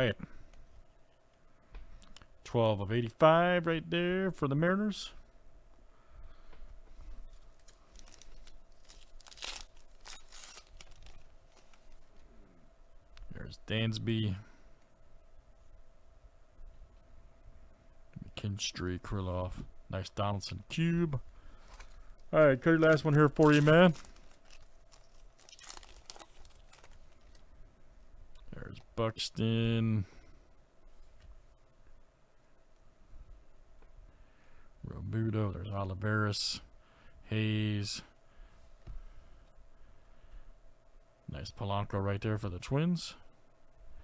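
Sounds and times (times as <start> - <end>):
foil wrapper tearing and crinkling: 7.3 - 12.0, 22.8 - 27.4.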